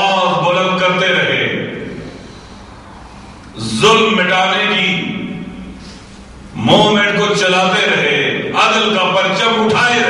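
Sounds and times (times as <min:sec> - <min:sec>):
man speaking into a microphone: 0:00.0 - 0:01.9, 0:03.5 - 0:05.6, 0:06.5 - 0:10.0.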